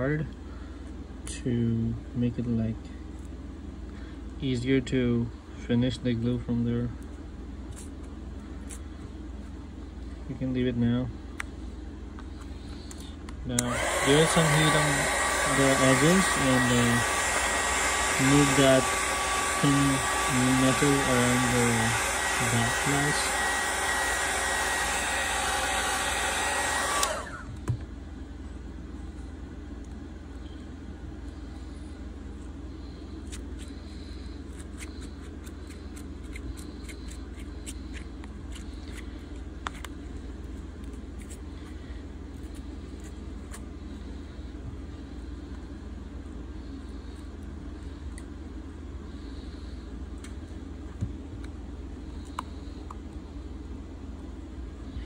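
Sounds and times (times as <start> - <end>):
low steady hum: 0.0 - 55.0
heat gun blowing: 13.5 - 27.7.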